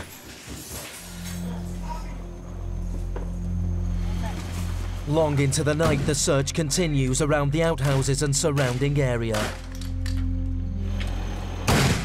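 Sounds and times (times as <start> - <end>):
low steady hum: 1.0 - 7.6.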